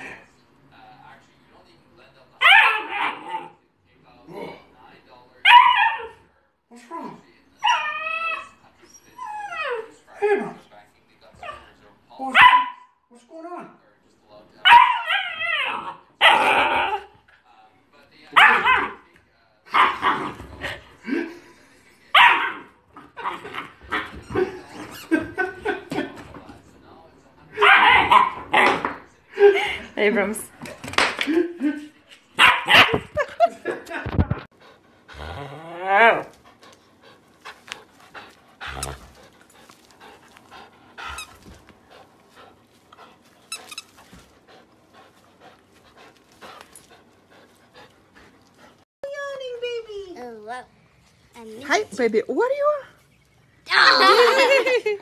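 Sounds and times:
puppy barking and yipping: 14.7 - 16.4, 32.4 - 33.0.

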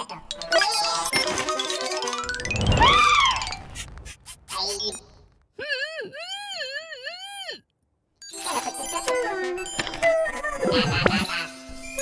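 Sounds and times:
cartoon music with tinkly notes: 0.0 - 3.6, 8.2 - 12.0.

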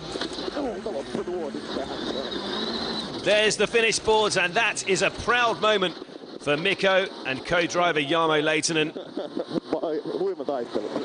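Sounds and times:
indistinct voices: 0.0 - 9.8
steady low hum: 0.0 - 11.0.

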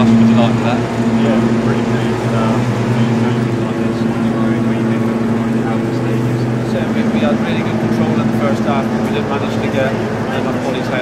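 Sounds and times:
faint indistinct voices: 0.0 - 11.0
low machine hum: 0.0 - 11.0.

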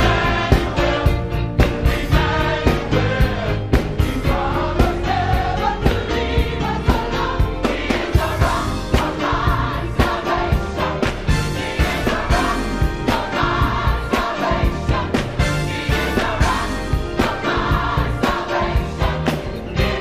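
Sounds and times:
band accompaniment with steady beat: 0.0 - 20.0
gospel choir singing: 0.0 - 20.0.

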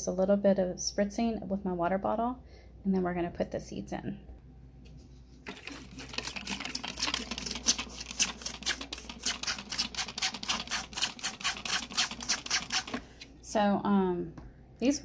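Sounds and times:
spray bottle spritzing water: 5.5 - 13.0.

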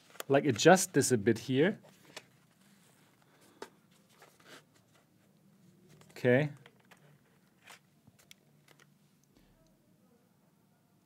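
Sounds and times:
headset clicks and rustles: 0.0 - 0.8, 1.8 - 5.1, 5.8 - 9.4.

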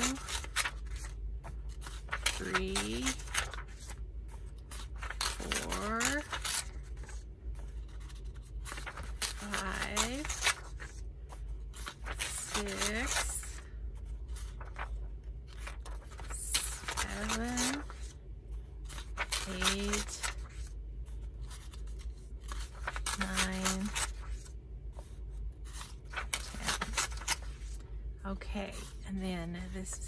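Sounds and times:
book pages turning: 0.0 - 27.9
paper rustling: 0.0 - 27.9, 28.7 - 29.9.

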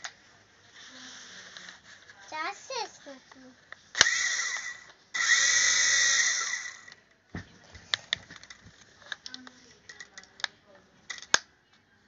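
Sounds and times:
toy helicopter motors whining: 4.0 - 7.0.

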